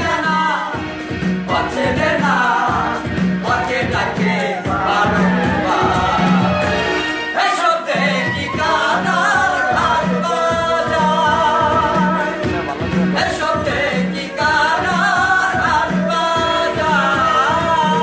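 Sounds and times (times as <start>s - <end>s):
steady beat: 0.0s - 7.3s, 7.9s - 18.0s
man singing: 0.0s - 18.0s.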